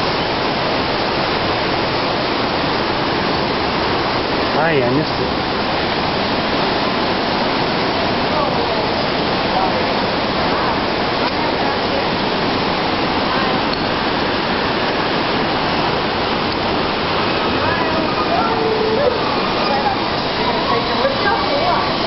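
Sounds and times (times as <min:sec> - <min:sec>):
water rushing: 0:00.0 - 0:22.0
faint voices: 0:17.1 - 0:22.0.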